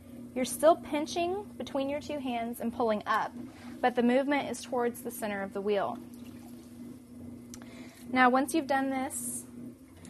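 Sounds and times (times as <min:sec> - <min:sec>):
potter's wheel humming: 0:00.0 - 0:10.0.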